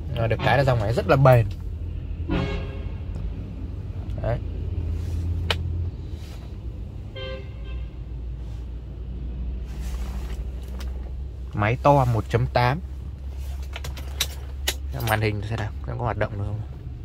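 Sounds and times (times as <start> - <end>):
road traffic rumble inside car: 0.0 - 17.0
vehicle horn toot: 0.3 - 0.9, 2.2 - 3.1, 7.1 - 8.0.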